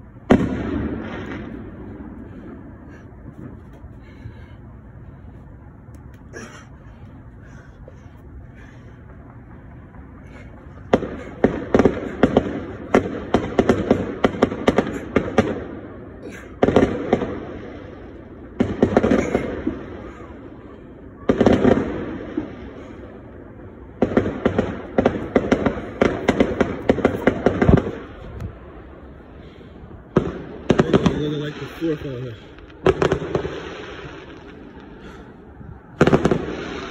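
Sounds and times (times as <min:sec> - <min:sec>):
fireworks cracking and popping: 0:24.0 - 0:28.2, 0:30.1 - 0:35.0, 0:36.0 - 0:36.9.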